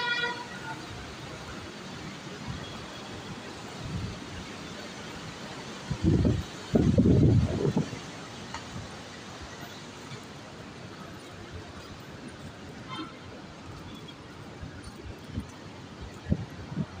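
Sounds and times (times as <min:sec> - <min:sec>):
vehicle horn toot: 0:00.0 - 0:00.9, 0:12.8 - 0:13.3
city traffic noise: 0:00.0 - 0:17.0
wind rumbling on microphone: 0:05.8 - 0:09.4, 0:11.0 - 0:17.0.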